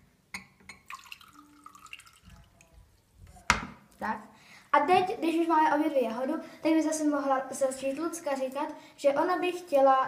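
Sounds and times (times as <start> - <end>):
glass clinking on glass: 0.4 - 1.0
drink pouring between glasses: 0.4 - 2.7.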